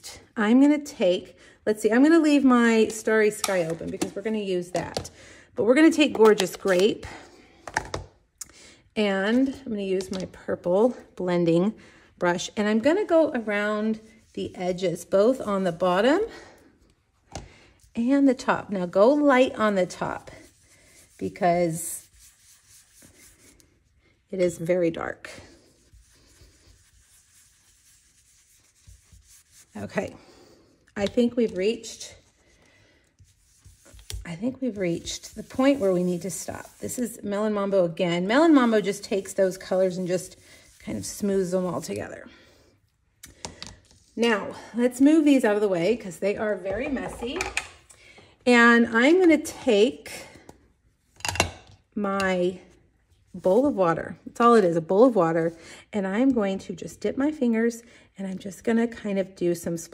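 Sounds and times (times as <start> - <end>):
brush rubbing on cardstock: 19.6 - 23.8, 25.5 - 30.0, 33.1 - 37.4, 38.4 - 41.9.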